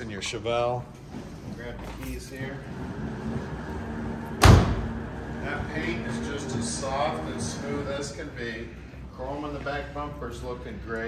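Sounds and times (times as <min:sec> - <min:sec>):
car door shutting: 0:04.3 - 0:04.9.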